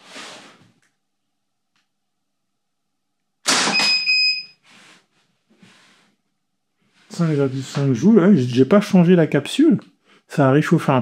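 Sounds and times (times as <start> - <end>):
air pistol shot: 3.5 - 3.9
high electronic beep: 3.7 - 4.6.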